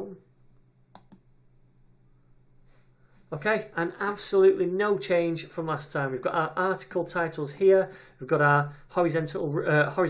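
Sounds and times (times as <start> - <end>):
computer mouse clicks: 0.9 - 1.3.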